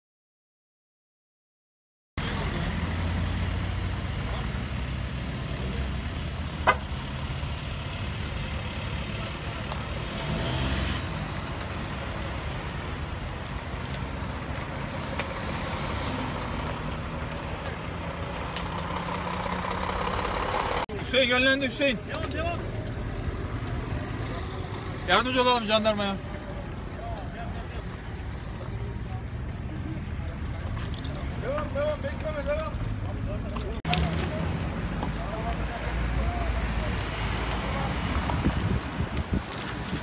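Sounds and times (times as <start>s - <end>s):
vehicle engine idling: 2.2s - 10.2s, 11.2s - 38.3s.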